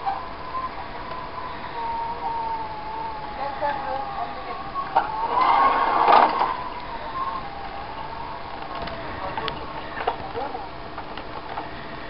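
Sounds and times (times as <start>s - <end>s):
emergency siren wailing: 0.0s - 11.6s.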